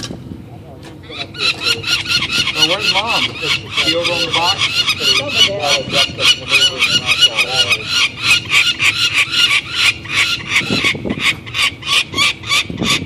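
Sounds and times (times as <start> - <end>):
falcon harsh cries: 1.0 - 13.0.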